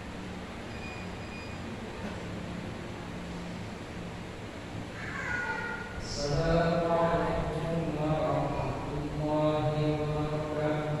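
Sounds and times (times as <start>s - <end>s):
man chanting prayer: 6.0s - 11.0s.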